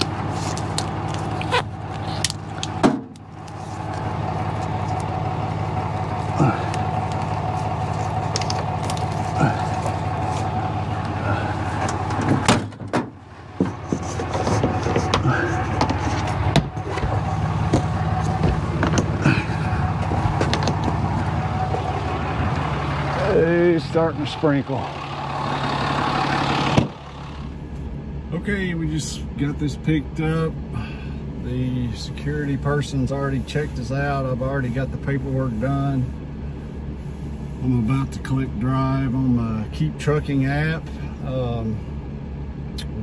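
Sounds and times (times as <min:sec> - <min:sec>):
truck engine idling: 0:00.0 - 0:43.0
clicks and knocks of handling: 0:20.0 - 0:21.0.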